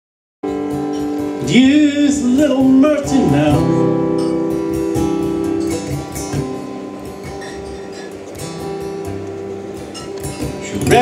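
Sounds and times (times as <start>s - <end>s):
acoustic guitar chords strummed: 0.4s - 11.0s.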